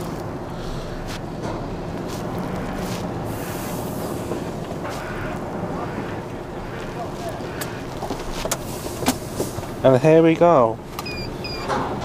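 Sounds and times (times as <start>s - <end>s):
diesel lorry engine running: 0.0s - 12.0s.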